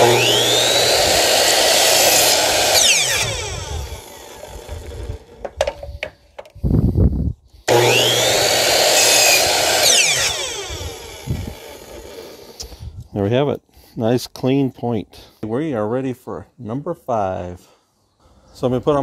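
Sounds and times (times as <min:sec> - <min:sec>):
electric miter saw cutting wood: 0:00.0 - 0:05.6, 0:07.7 - 0:12.6
knocks of wood piece turned: 0:05.4 - 0:06.6.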